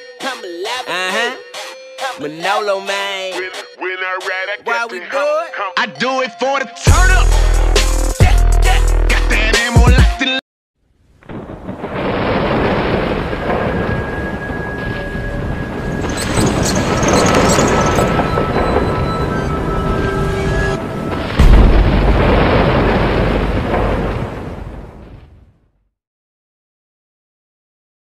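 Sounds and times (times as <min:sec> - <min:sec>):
deep boom: 0:11.2 - 0:25.6
thunder-like rumbling: 0:11.2 - 0:25.6.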